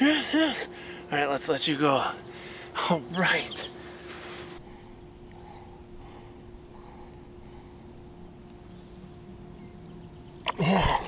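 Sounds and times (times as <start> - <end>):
riverside ambience: 0.0 - 11.0
steady low hum: 0.0 - 11.0.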